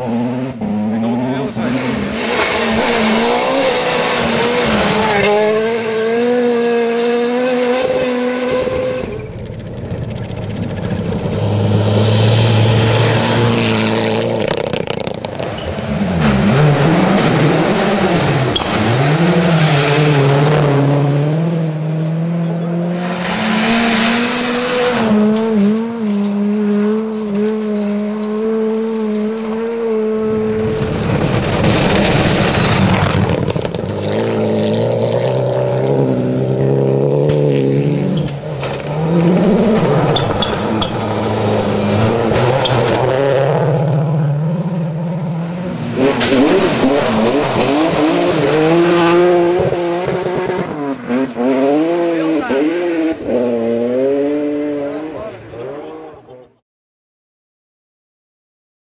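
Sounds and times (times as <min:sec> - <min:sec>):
rally car engines revving: 0:00.0 - 0:56.6
tyres rushing over gravel: 0:30.8 - 0:34.5.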